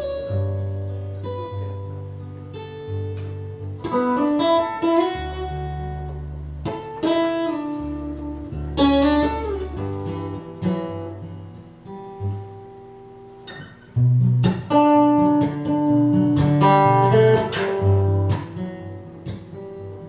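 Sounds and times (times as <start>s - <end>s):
fingerstyle acoustic guitar: 0.0s - 20.0s.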